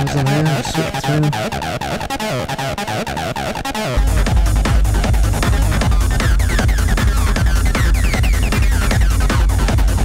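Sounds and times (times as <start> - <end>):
acid synth line with delay: 0.0 - 10.0
techno drum pattern with kick: 0.0 - 10.0.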